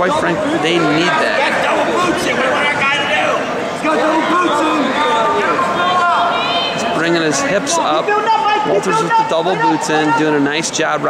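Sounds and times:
voices shouting and talking: 0.0 - 11.0
long drawn-out shout: 0.5 - 6.9, 7.7 - 10.3.

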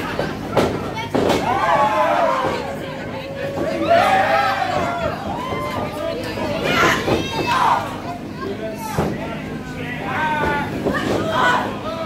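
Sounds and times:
crowd voices reacting: 0.0 - 12.0.

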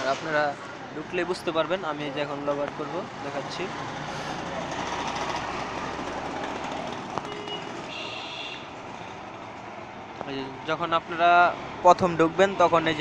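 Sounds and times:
rushing background noise: 0.0 - 13.0.

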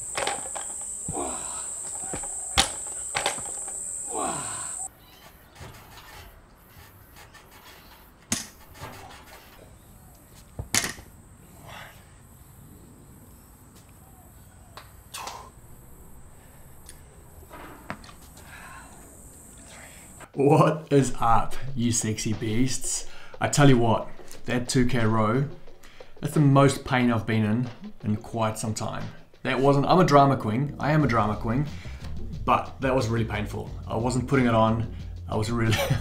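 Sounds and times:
insects chirping: 0.0 - 4.9, 11.0 - 20.3
gym equipment knocks and clanks: 0.1 - 3.8.

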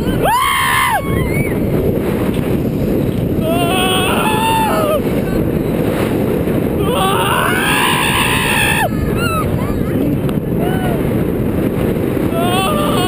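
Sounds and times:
people whooping and yelling: 0.0 - 1.6, 3.4 - 5.1, 6.8 - 9.9
roller coaster train rumbling on track: 0.0 - 13.0
wind rushing: 0.0 - 13.0
person screaming: 3.4 - 5.0, 6.8 - 9.3.

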